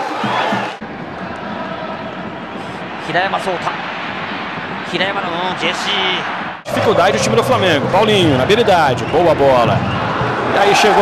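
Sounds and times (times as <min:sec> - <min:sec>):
stadium crowd noise: 0:00.0 - 0:11.0
commentator's voice: 0:04.9 - 0:09.8.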